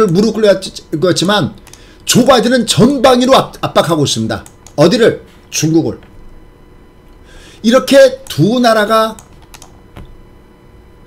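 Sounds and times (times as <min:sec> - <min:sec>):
computer control clicks: 0:00.0 - 0:00.4, 0:04.3 - 0:04.8, 0:09.1 - 0:10.2.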